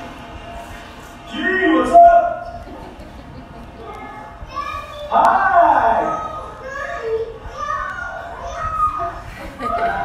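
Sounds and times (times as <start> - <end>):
children's excited voices: 3.7 - 10.0.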